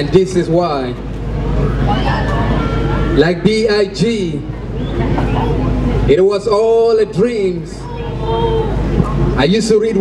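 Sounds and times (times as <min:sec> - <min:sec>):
murmuring voices: 0:01.4 - 0:09.6.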